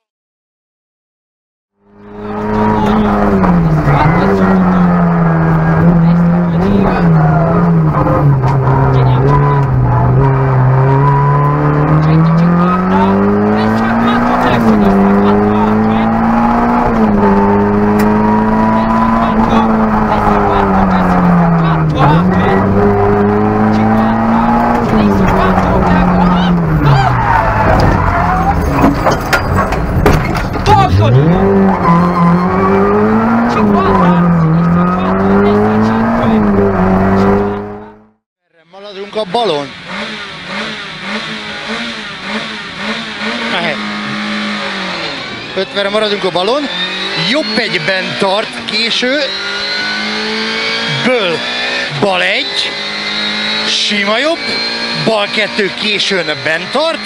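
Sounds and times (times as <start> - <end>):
rally car engine at high revs: 1.8 - 38.2, 38.8 - 57.0
quieter rally car engine: 1.8 - 57.0
knocks and rattles: 27.6 - 30.9.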